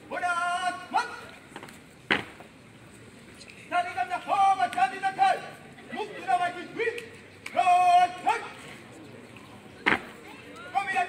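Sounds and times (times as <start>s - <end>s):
person shouting commands: 0.1s - 1.3s, 7.5s - 8.6s
boots stamping in unison: 1.6s - 2.5s, 9.8s - 10.2s.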